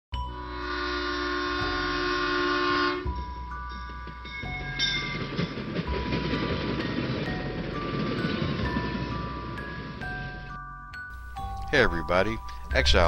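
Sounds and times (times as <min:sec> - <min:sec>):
horn-like chord: 0:00.2 - 0:03.4
held high notes: 0:00.2 - 0:13.0.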